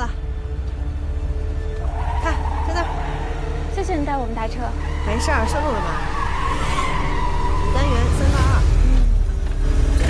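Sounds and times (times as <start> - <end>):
car tyres squealing: 1.8 - 9.0.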